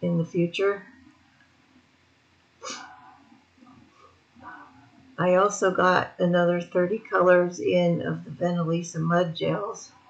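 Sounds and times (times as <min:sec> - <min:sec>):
faint small sounds: 0:00.0 - 0:10.0.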